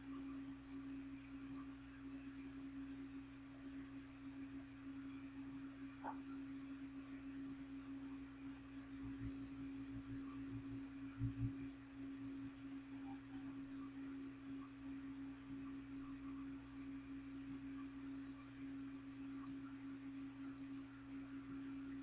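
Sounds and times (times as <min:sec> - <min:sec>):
steady low hum: 0:00.0 - 0:22.0
soft low thumps: 0:10.0 - 0:11.6.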